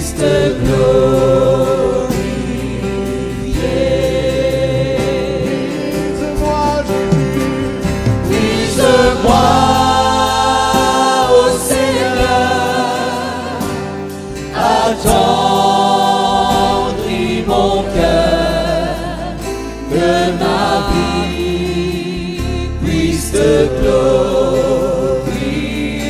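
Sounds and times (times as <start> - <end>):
band with steady bass line: 0.0 - 26.0
group singing gospel song: 0.0 - 26.0.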